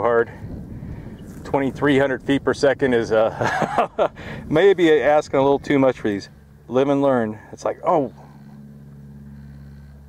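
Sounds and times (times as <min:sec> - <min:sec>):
steady low hum: 0:00.0 - 0:10.0
man speaking: 0:04.5 - 0:08.3.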